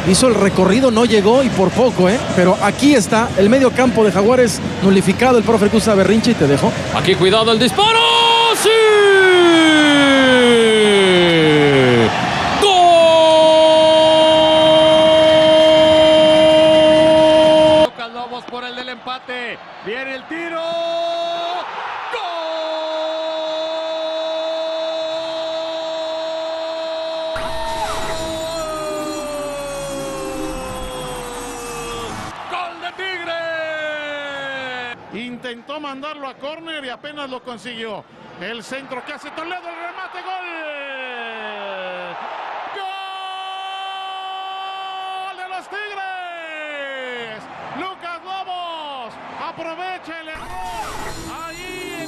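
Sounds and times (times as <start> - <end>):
crowd cheering: 0.0 - 35.0, 38.5 - 52.0
commentator's drawn-out goal cry: 7.7 - 18.0.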